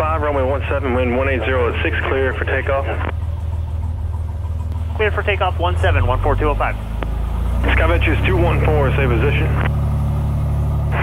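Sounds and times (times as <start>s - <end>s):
aircraft engine idling: 0.0s - 11.0s.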